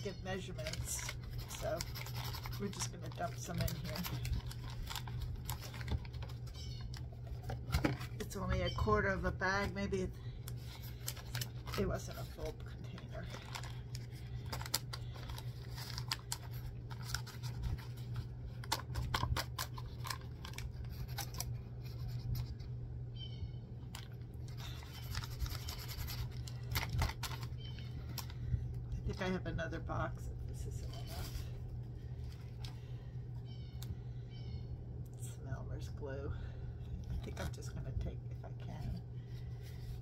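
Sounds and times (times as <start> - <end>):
paper bag crinkling: 0.3 - 9.7, 10.5 - 22.6, 23.9 - 28.4.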